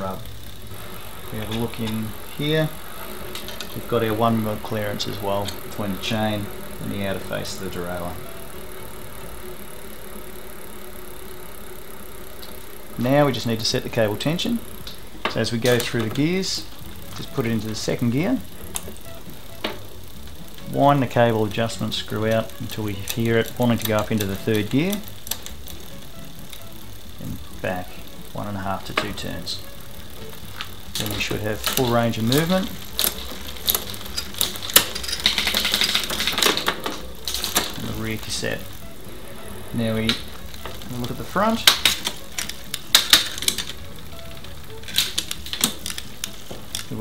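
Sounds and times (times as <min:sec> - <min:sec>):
bicycle chain running over gears: 0:00.0 - 0:47.0.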